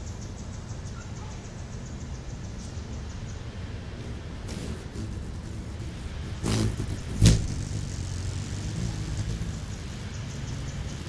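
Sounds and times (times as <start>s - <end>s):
hummingbird wings whirring: 3.8s - 11.0s
low steady wing hum: 3.8s - 11.0s.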